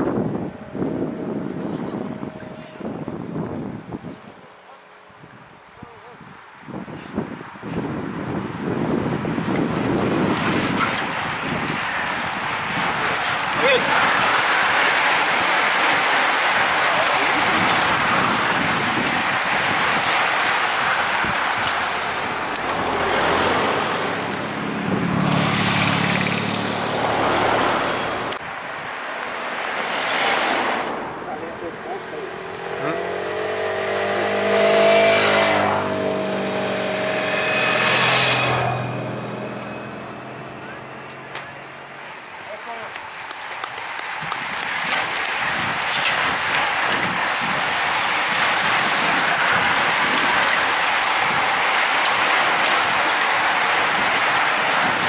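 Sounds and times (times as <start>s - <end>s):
bicycles rushing past: 7.7s - 55.0s
motorcycles riding past: 9.7s - 28.3s, 29.4s - 42.6s.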